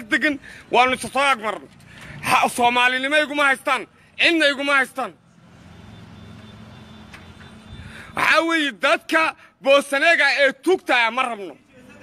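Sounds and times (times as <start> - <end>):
vehicle engine rumble: 0.4 - 2.8.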